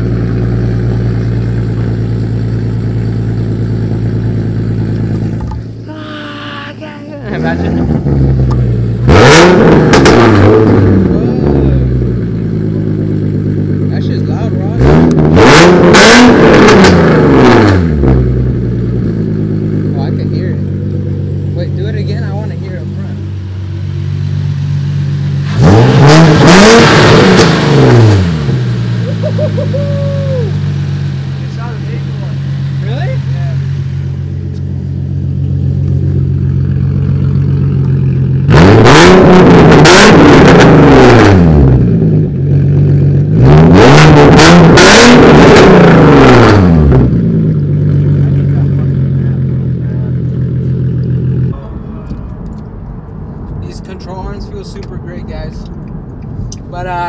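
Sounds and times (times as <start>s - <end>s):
car engine idling and revving: 0.0s - 57.0s.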